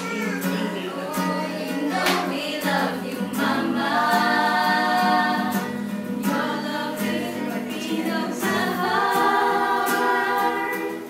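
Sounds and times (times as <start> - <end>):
acoustic guitar: 0.0 - 11.0
group singing together: 0.4 - 11.0.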